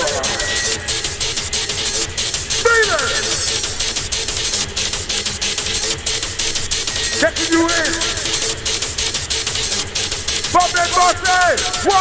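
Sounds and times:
fast electronic dance beat: 0:00.0 - 0:12.0.

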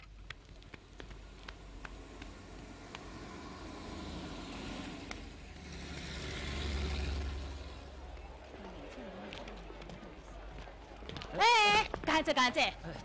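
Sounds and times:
vehicle engine rumble: 0:00.0 - 0:11.3
road noise: 0:00.0 - 0:13.0.

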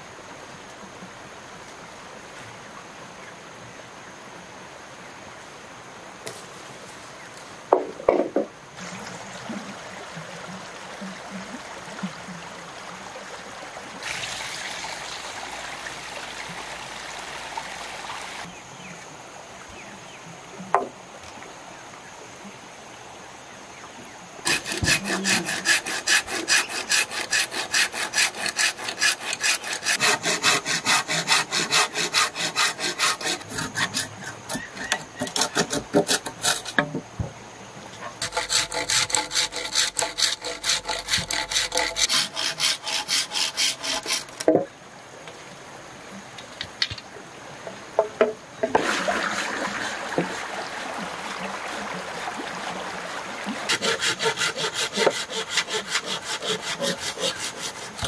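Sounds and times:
stream trickling over rocks: 0:08.7 - 0:18.5, 0:48.7 - 0:54.4
hand saw cutting bamboo: 0:24.4 - 0:37.0, 0:38.2 - 0:44.5, 0:53.6 - 0:58.0.

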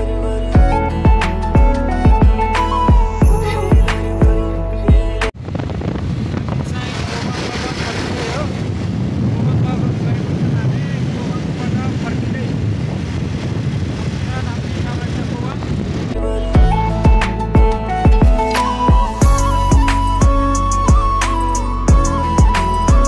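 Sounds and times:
wind rushing over microphone: 0:05.2 - 0:23.0.

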